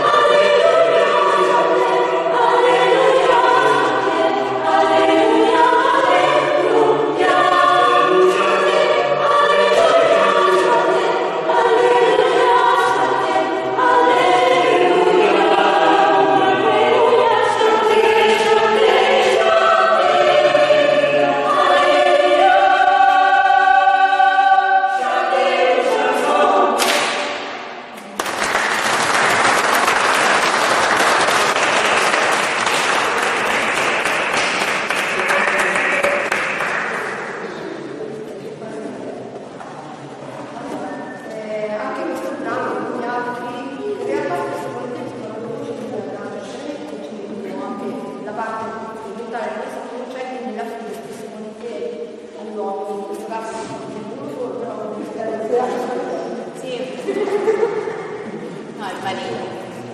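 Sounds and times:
choir singing unaccompanied: 0.0s - 27.9s, 28.5s - 38.0s, 39.4s - 59.9s
audience applause: 28.1s - 37.3s.

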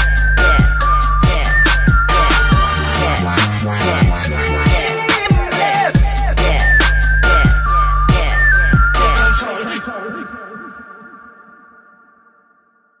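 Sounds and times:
heavy sub-bass: 0.0s - 9.4s
whistle-like synth melody: 0.0s - 10.1s.

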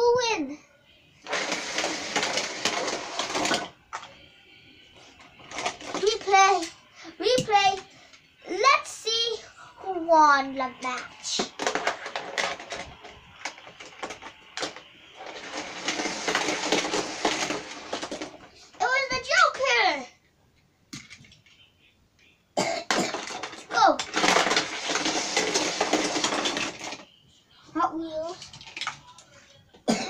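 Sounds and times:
toy cars clattering down plastic ramp: 1.3s - 4.1s, 5.4s - 6.7s, 11.3s - 19.6s, 22.9s - 27.1s, 28.4s - 29.0s
toy cars being handled: 1.3s - 4.2s, 5.1s - 7.9s, 10.8s - 19.7s, 21.0s - 21.6s, 22.9s - 27.1s, 28.3s - 29.3s.

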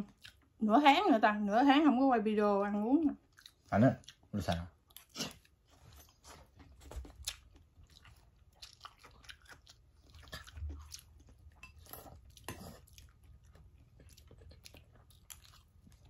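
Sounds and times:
chewing and crunching food: 0.0s - 0.6s, 3.1s - 16.0s.

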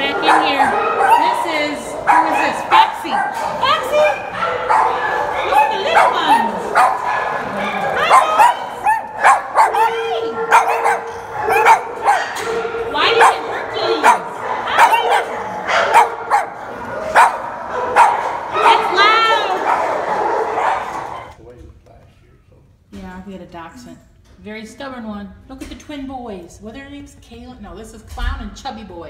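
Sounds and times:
dogs barking: 0.0s - 21.4s.

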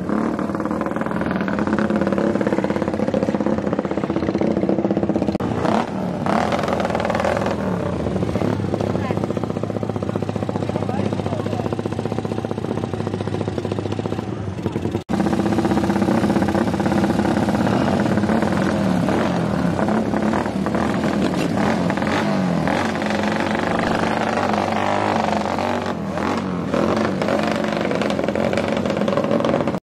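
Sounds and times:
motorcycle engine revving: 0.0s - 29.8s.

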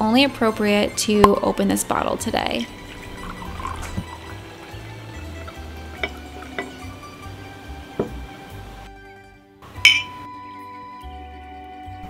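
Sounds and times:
soft background music: 0.0s - 12.0s
wine pouring into a glass: 2.5s - 8.4s
wine glasses clinking: 5.4s - 7.3s, 9.8s - 10.2s
light glass clicks: 9.8s - 10.2s.

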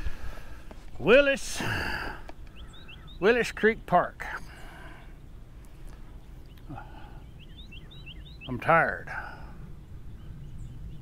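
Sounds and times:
low wind rumble on microphone: 0.0s - 1.2s, 9.1s - 11.0s
songbird chirping: 0.0s - 11.0s.

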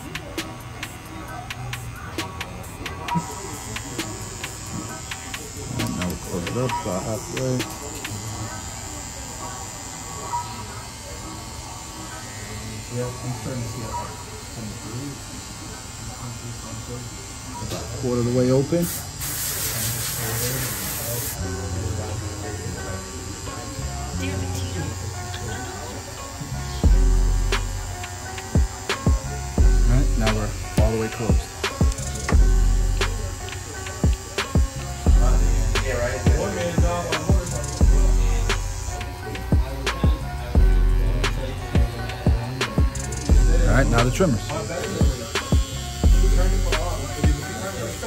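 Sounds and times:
instrumental backing beat: 0.0s - 8.3s, 24.5s - 48.0s
hair trimmer buzzing: 0.0s - 48.0s.

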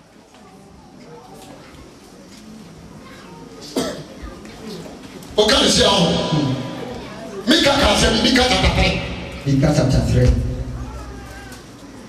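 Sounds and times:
faint voice: 0.2s - 5.1s, 10.6s - 12.0s
person coughing: 3.6s - 4.1s.

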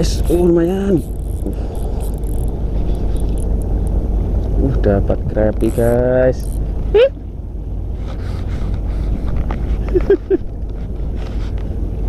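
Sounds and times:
fishing reel cranking: 0.0s - 3.9s, 5.5s - 6.7s
steady low rumble: 0.0s - 12.0s.

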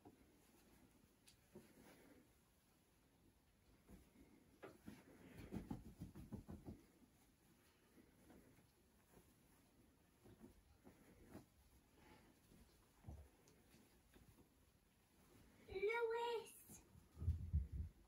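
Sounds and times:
fabric sheet rustling: 0.0s - 18.0s.

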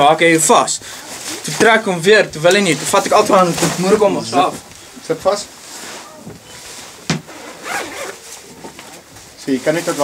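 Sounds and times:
harness and suit rustling: 2.5s - 10.0s.

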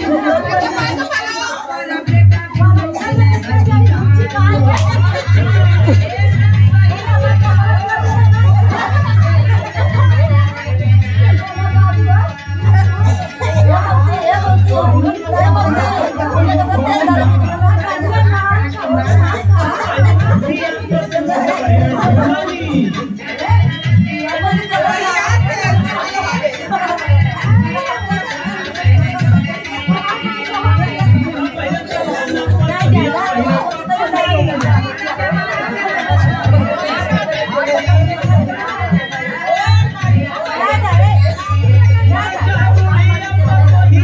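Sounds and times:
chatter: 0.0s - 44.0s
women singing together: 0.0s - 44.0s
women talking over one another: 0.0s - 44.0s
music with steady bass beat: 2.1s - 44.0s.

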